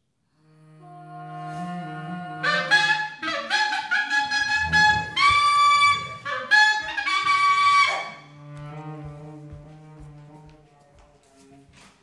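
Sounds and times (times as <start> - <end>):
cello: 0.4 - 12.0
clarinet: 0.6 - 11.5.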